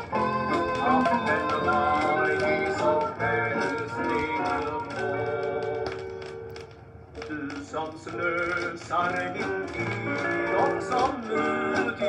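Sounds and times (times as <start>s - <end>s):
gospel song recording: 0.0s - 12.0s.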